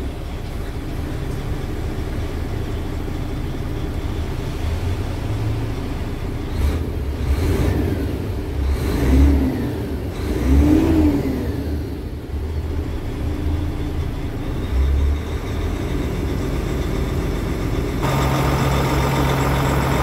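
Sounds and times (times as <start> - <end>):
diesel engine idling by exhaust: 0.0 - 8.8, 9.4 - 20.0
diesel truck engine revving: 0.8 - 20.0.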